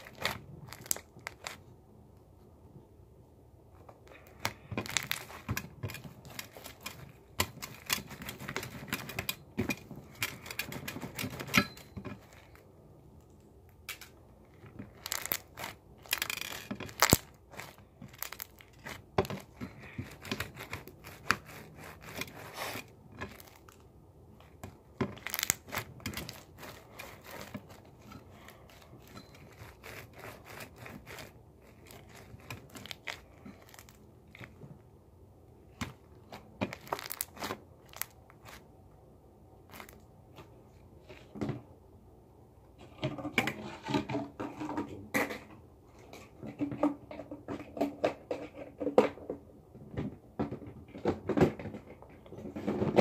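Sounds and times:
hands crinkling material: 0:00.0 - 0:01.7, 0:03.8 - 0:34.9, 0:35.7 - 0:38.8, 0:39.6 - 0:41.2.

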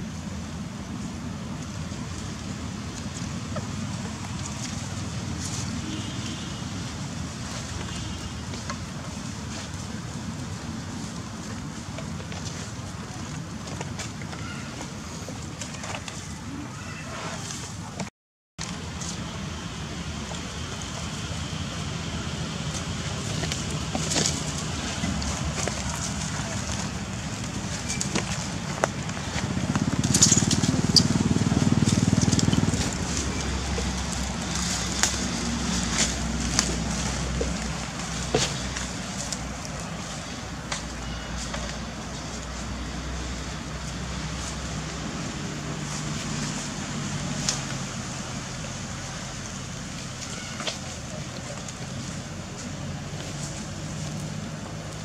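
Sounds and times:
dry leaves crackling: 0:01.7 - 0:17.1, 0:18.6 - 0:55.0.

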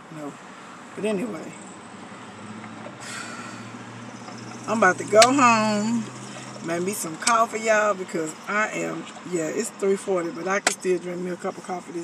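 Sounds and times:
car idling hum: 0:00.0 - 0:12.0.

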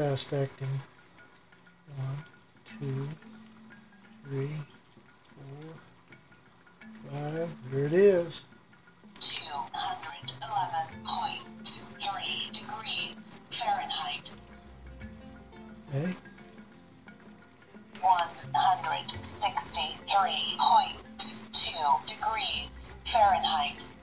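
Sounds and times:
water boiling: 0:00.0 - 0:24.0.

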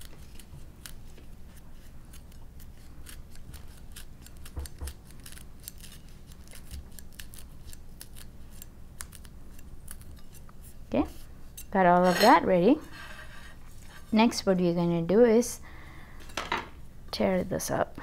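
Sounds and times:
knife cutting chilies: 0:00.0 - 0:10.5.

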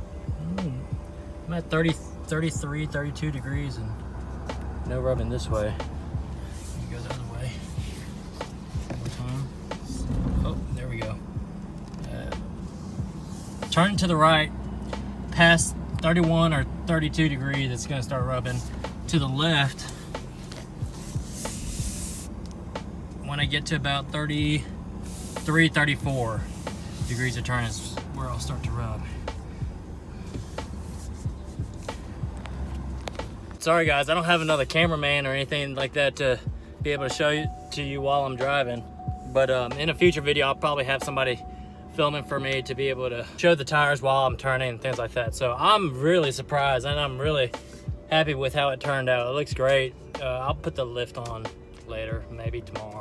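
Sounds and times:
pickup engine idling: 0:00.0 - 0:45.2
faint music-like tones: 0:00.0 - 0:53.0.

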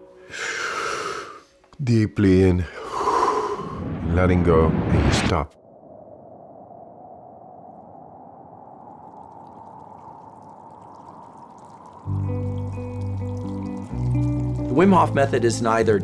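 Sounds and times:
running trickling water: 0:08.9 - 0:15.8
music with low chords: 0:12.1 - 0:16.0.

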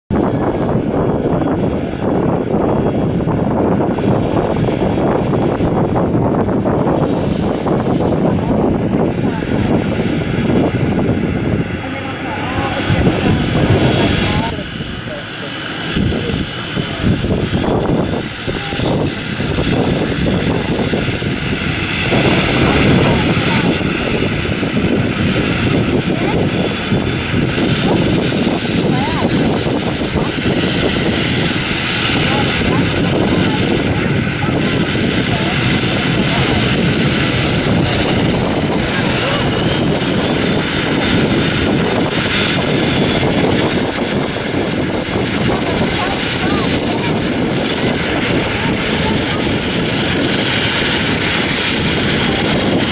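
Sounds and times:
turboprop engine rumble: 0:00.0 - 0:52.9
engine high whine: 0:00.1 - 0:52.9.

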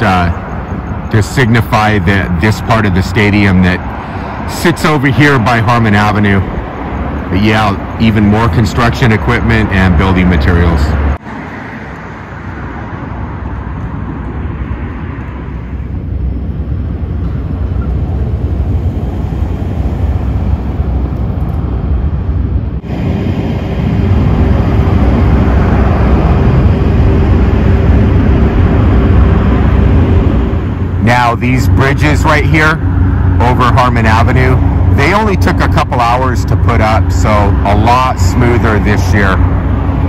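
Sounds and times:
road traffic rumble: 0:00.0 - 0:40.0
steady hum: 0:00.0 - 0:40.0.

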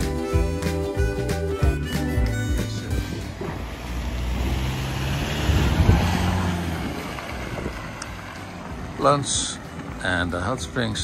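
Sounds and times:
engine running at low revs: 0:02.3 - 0:11.0
wind noise on microphone: 0:02.4 - 0:08.3.

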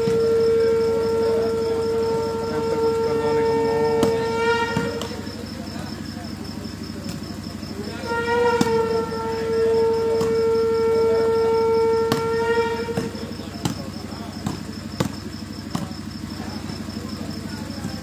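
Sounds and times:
long blown horn note: 0:00.0 - 0:06.0, 0:07.8 - 0:13.6
high pulsing chirr: 0:00.0 - 0:18.0
volleyball being hit: 0:04.0 - 0:05.3, 0:10.2 - 0:10.4, 0:12.1 - 0:15.9.

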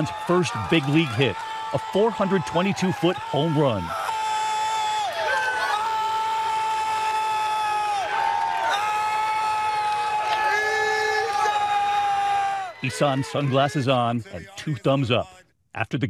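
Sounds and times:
man shouting in celebration: 0:00.0 - 0:14.8
crowd noise: 0:00.0 - 0:15.4
fans shouting: 0:00.0 - 0:15.4.

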